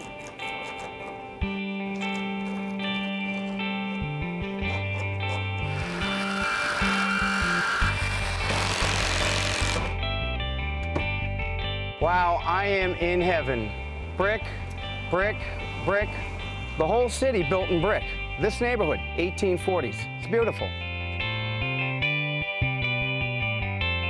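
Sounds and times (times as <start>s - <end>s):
instrumental background music: 0.0s - 24.0s
electric jigsaw cutting wood: 5.6s - 10.0s.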